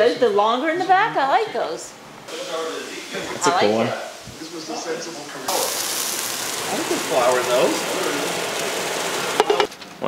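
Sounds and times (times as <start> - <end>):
meat sizzling in a frying pan: 2.3 - 9.7.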